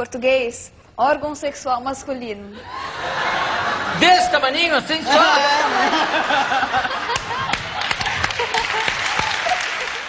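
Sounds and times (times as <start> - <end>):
people laughing: 2.6 - 10.0
audience applauding: 6.5 - 10.0.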